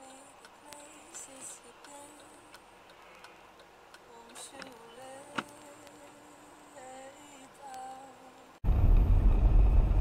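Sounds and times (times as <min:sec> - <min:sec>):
turn signal ticking: 0:00.0 - 0:06.2
radio music with singing: 0:00.0 - 0:08.6.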